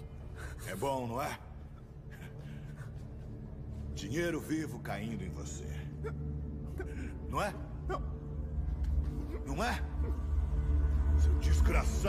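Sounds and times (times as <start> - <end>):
low droning film score: 0.0 - 12.0.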